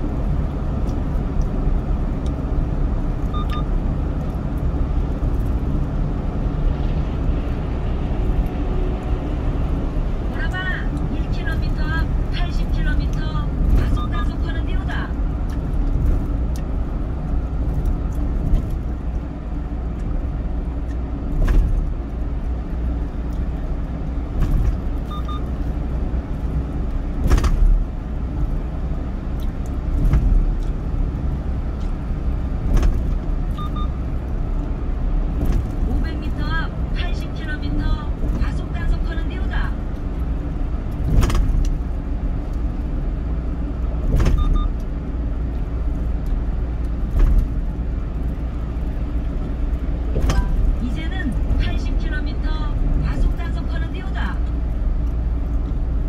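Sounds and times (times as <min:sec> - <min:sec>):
car engine noise: 0:00.0 - 0:56.0
tyre and road rumble: 0:00.0 - 0:56.0.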